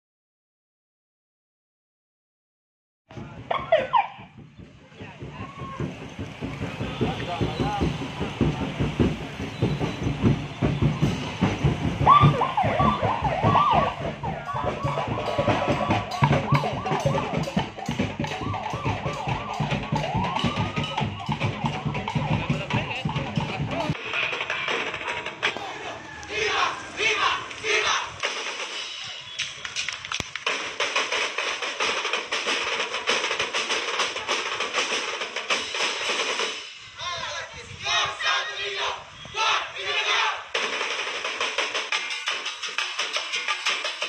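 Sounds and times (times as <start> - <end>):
fast drumbeats: 3.1 - 25.8, 28.1 - 36.9, 40.4 - 44.0
police siren wailing: 3.5 - 4.3, 8.0 - 23.9.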